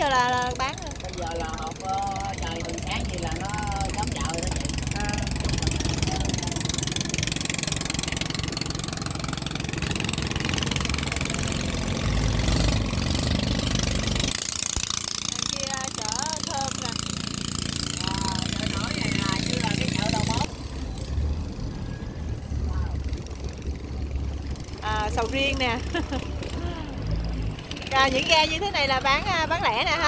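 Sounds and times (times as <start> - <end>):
boat engine running: 0.0 - 30.0.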